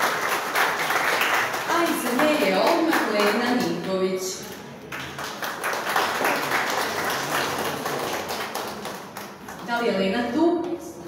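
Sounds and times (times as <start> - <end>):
audience applauding: 0.0 - 3.7, 4.8 - 9.7.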